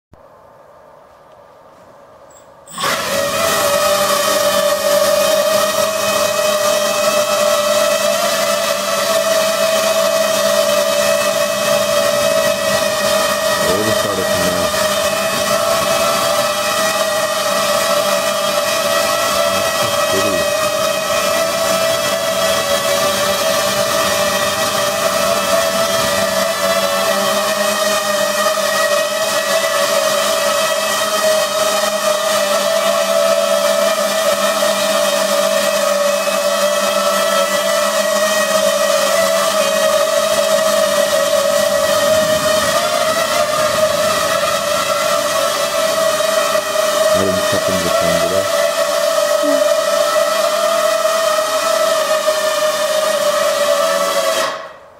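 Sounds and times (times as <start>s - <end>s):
drone propellers whirring: 2.7s - 54.4s.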